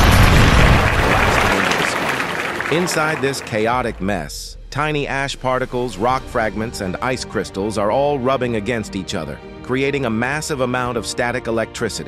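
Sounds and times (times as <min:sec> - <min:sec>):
volcanic eruption deep rumbling blast: 0:00.0 - 0:01.6.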